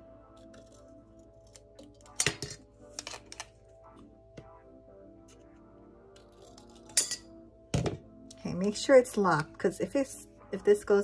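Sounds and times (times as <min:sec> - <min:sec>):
soft background music: 0:00.0 - 0:11.0
scissors snipping metal: 0:00.4 - 0:03.5, 0:06.2 - 0:07.2.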